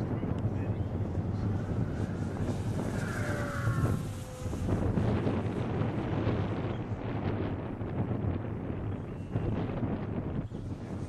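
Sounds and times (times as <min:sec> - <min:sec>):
wind buffeting microphone: 0:00.0 - 0:11.0
model plane motor whine: 0:00.4 - 0:07.9.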